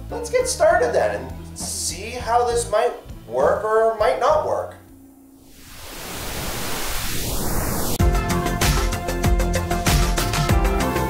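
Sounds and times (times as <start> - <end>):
television static hiss: 5.5 - 8.0.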